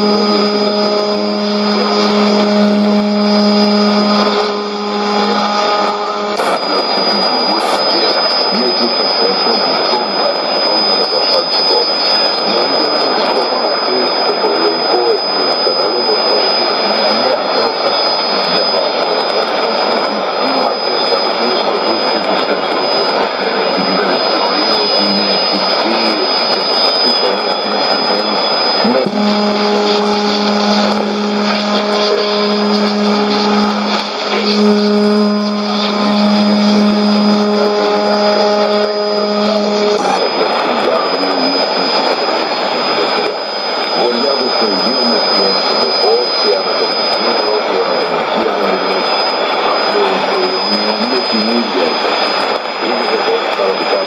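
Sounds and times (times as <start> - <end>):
high whistle: 0.0 - 54.0
low droning tone with overtones: 0.0 - 54.0
radio static hiss: 0.0 - 54.0
weak radio programme: 0.0 - 54.0.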